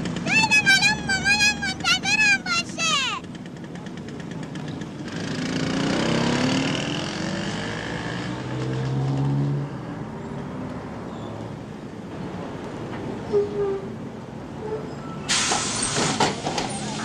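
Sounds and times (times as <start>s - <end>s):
vehicle engine passing: 0.0s - 11.0s
traffic noise: 0.0s - 17.0s.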